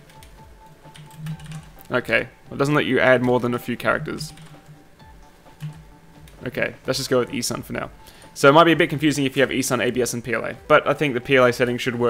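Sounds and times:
keyboard keys clicking: 0:00.0 - 0:01.9, 0:04.2 - 0:04.7, 0:05.6 - 0:06.4
soft background music: 0:00.0 - 0:12.0.

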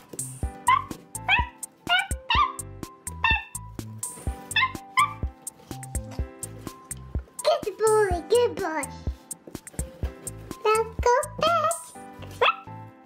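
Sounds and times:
background music with steady beat: 0:00.0 - 0:13.0
dog yips: 0:00.6 - 0:03.7, 0:04.4 - 0:05.3, 0:11.7 - 0:12.8.

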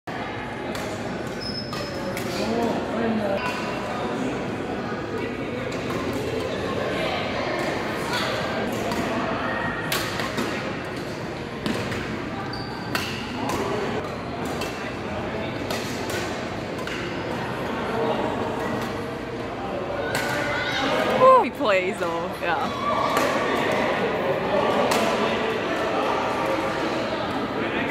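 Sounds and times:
chatter in echoing hall: 0:00.1 - 0:27.9
badminton rackets hitting shuttlecocks: 0:12.9 - 0:14.9, 0:15.6 - 0:17.4.

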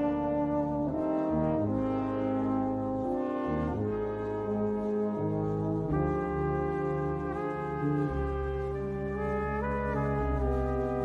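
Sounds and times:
slow brass music: 0:00.0 - 0:11.0.

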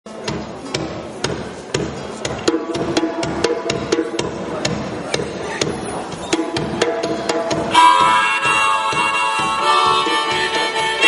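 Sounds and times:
low drum thuds: 0:00.2 - 0:11.0
sharp percussion knocks: 0:00.2 - 0:11.0.

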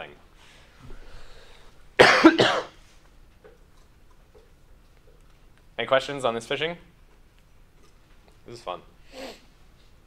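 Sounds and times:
man coughing: 0:02.0 - 0:02.8.

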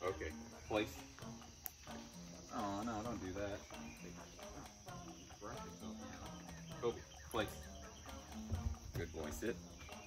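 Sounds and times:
insect chorus trilling: 0:00.0 - 0:10.0.

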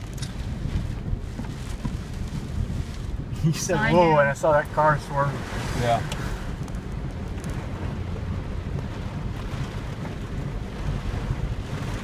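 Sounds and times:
road and wind noise: 0:00.0 - 0:12.0.

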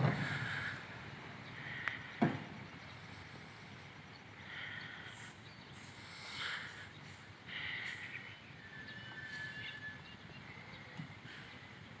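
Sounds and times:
birds chirping: 0:00.0 - 0:12.0
thin high bird whistle: 0:07.8 - 0:10.4.

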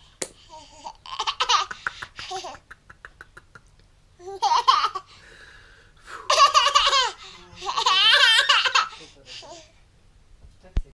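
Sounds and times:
baby laughing: 0:00.5 - 0:05.1, 0:06.3 - 0:09.7.

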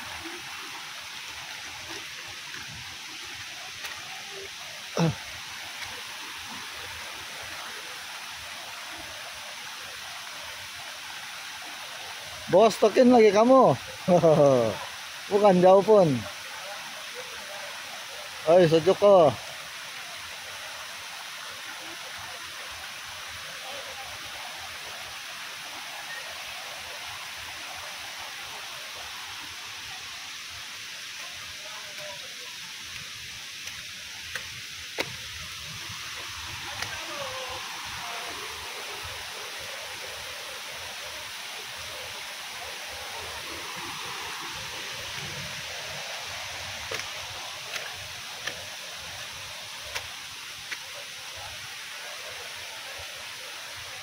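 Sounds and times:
river rushing over rocks: 0:00.0 - 0:54.0.

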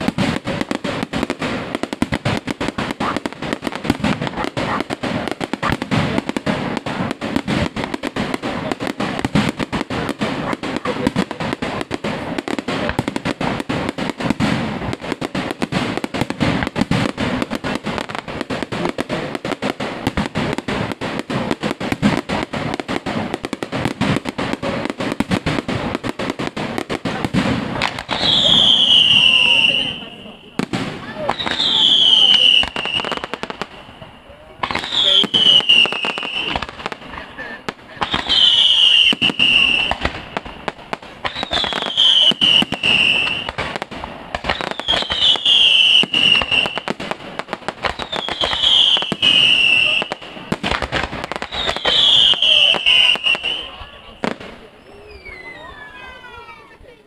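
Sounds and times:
fireworks crackling and bangs: 0:00.0 - 0:57.0
high whistle sliding downward: 0:54.8 - 0:56.0.

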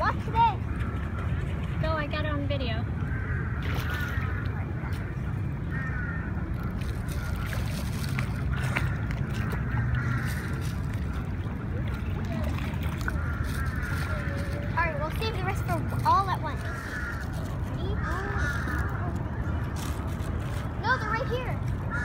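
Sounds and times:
faint voices: 0:00.0 - 0:22.0
fish splashing at water surface: 0:03.2 - 0:05.2, 0:06.0 - 0:20.8.

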